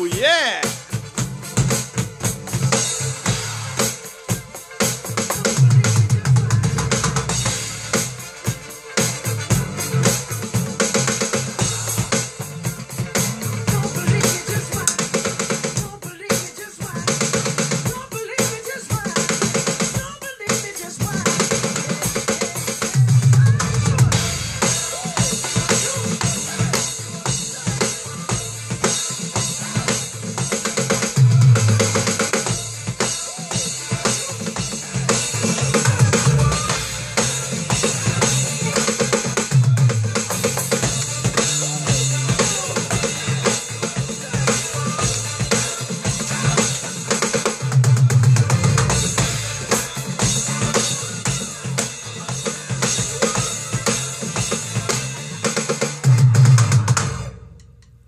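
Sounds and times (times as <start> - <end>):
electronic drum kit funk groove: 0.0 - 57.8
funk-pop song with bass line: 0.0 - 57.8.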